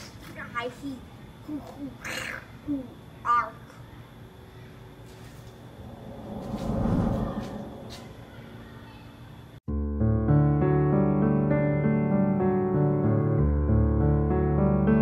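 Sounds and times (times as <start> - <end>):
child making creature grunts: 1.5 - 2.9
low rumbling swell: 5.7 - 8.3.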